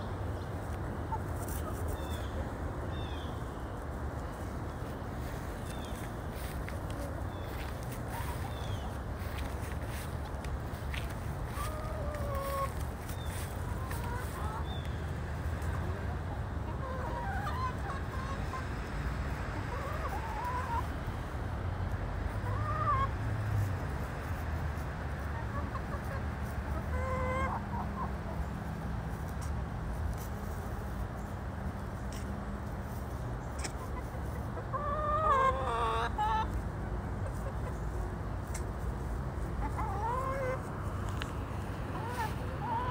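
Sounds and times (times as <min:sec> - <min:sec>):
hens calling softly: 0:04.2 - 0:18.8, 0:39.4 - 0:42.9.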